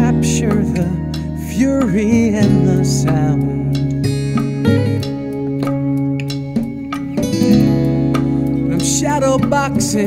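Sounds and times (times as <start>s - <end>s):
acoustic guitar strumming: 0.0s - 10.0s
steady low notes: 0.0s - 10.0s.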